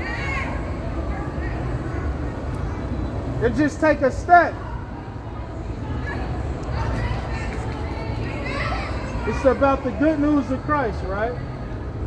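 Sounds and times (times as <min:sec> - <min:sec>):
distant indistinct voices: 0:00.0 - 0:12.0
low rumble of traffic: 0:00.0 - 0:12.0.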